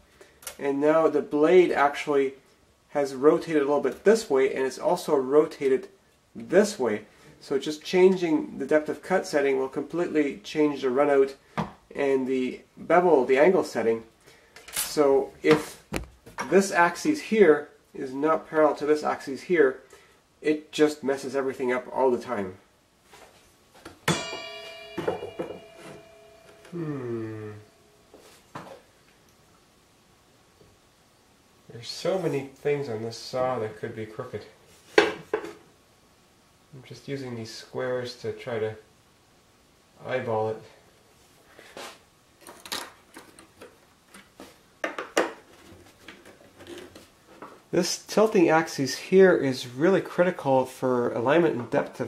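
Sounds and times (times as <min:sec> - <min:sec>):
metallic knock ringing like bell: 0:24.1 - 0:26.8.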